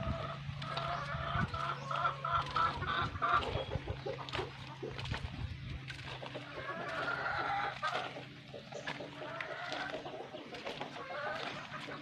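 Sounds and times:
drawn-out chicken call: 0.0 - 5.0, 6.2 - 12.0
chickens clucking: 0.0 - 12.0.

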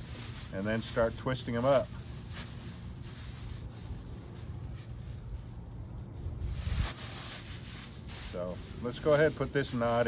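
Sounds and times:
low background rumble: 0.0 - 10.0
plastic bags rustling: 0.0 - 10.0.

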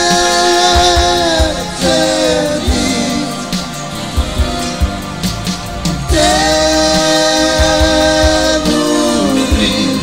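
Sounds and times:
band playing: 0.0 - 10.0
voices singing in harmony: 0.0 - 10.0.

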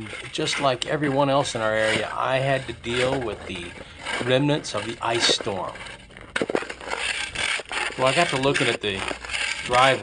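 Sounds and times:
shovel chipping and scraping ice: 0.0 - 10.0.

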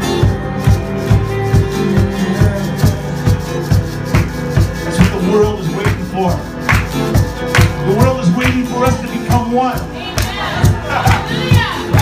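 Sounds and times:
drums beating: 0.0 - 12.0.

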